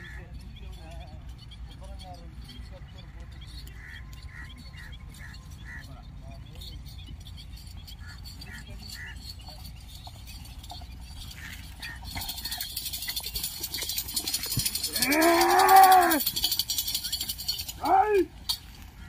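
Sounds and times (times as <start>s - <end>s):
rattling jingle: 0.0s - 19.0s
person shouting a long call: 14.9s - 16.2s, 17.8s - 18.3s.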